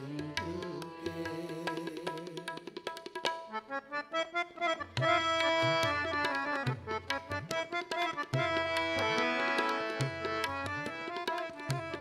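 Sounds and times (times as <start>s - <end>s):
tabla drumming: 0.0s - 3.8s, 4.7s - 12.0s
harmonium chords: 0.0s - 12.0s.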